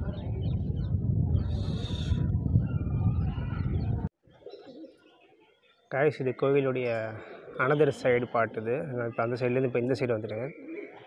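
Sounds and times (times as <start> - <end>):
low rumble on microphone: 0.0 - 4.1
bird calling: 7.1 - 11.0.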